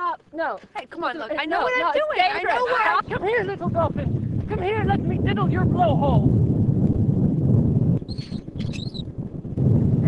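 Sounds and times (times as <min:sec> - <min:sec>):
dolphin chirping whistles: 0:08.1 - 0:09.1.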